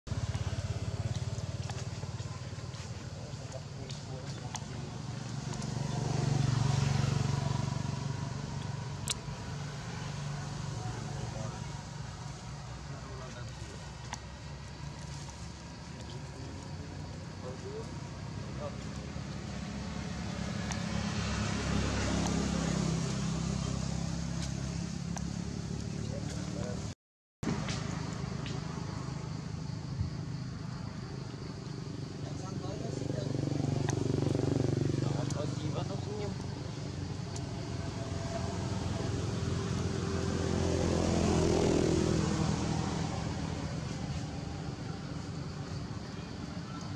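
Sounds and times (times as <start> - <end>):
vehicle engine rumble: 0.1 - 46.9.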